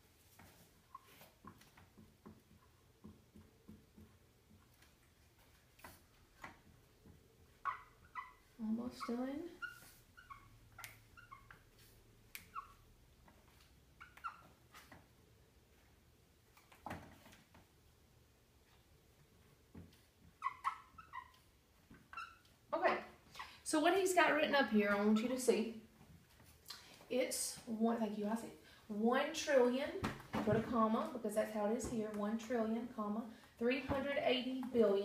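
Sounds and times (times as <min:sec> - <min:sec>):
marker strokes on a whiteboard: 0:00.1 - 0:15.0.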